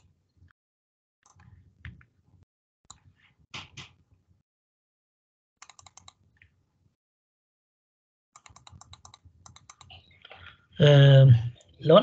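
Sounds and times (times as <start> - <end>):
computer input clicks: 5.6 - 6.2, 8.4 - 9.9.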